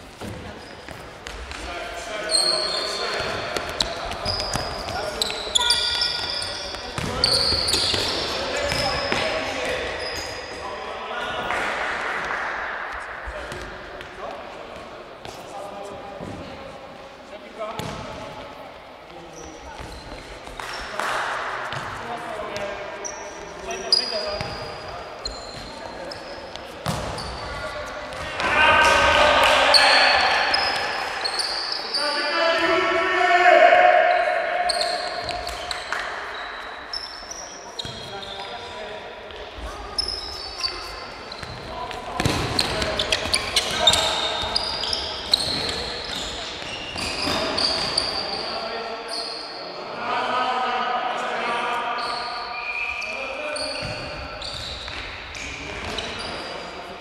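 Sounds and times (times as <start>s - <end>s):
sneakers squeaking on court: 0.0s - 10.7s, 17.8s - 18.2s, 19.3s - 21.0s, 21.7s - 29.0s, 29.7s - 32.2s, 34.7s - 38.8s, 39.5s - 49.7s, 52.0s - 56.6s
players shouting: 28.2s - 35.3s.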